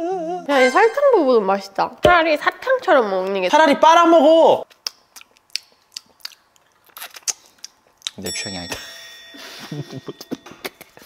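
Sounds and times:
crunching sugar-coated candy: 0:04.6 - 0:08.2.

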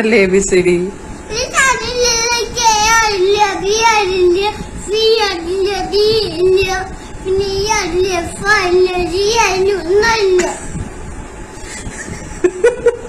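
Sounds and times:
toddler singing: 0:01.3 - 0:10.6.

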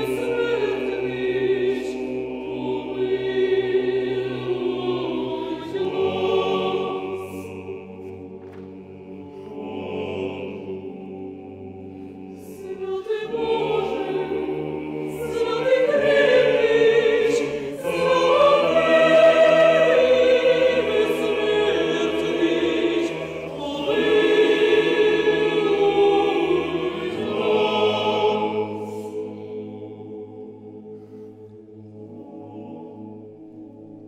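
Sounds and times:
mixed choir singing chords: 0:00.0 - 0:34.0.

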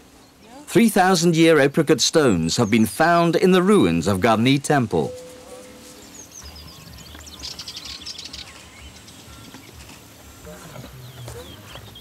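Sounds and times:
low man's voice: 0:00.7 - 0:05.2
small birds chirping: 0:01.3 - 0:12.0.

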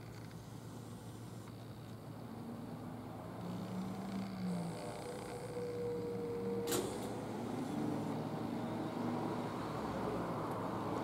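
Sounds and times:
vehicle engine hum: 0:00.0 - 0:11.0.

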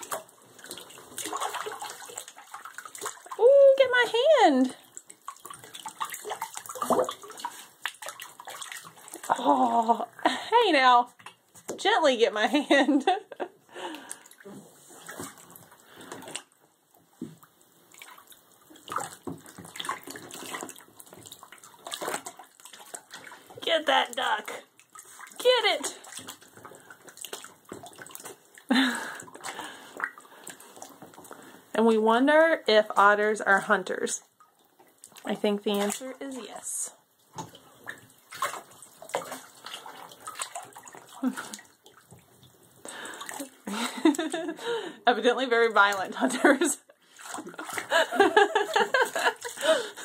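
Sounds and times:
water splashing in a tub: 0:00.0 - 0:50.0.

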